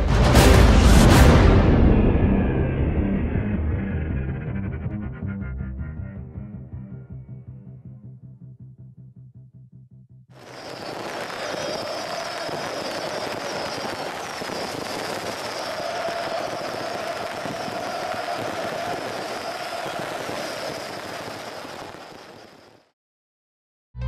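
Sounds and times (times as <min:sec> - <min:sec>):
stadium crowd cheering: 0:10.4 - 0:22.6.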